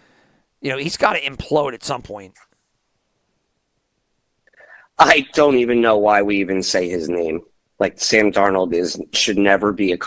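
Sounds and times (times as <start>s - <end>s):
faint breath: 0.0s - 0.6s, 4.5s - 5.0s.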